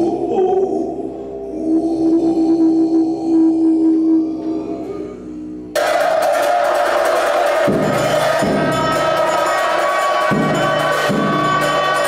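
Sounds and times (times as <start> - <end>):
monks chanting: 0.0 - 12.0
cymbals clashing: 5.7 - 12.0.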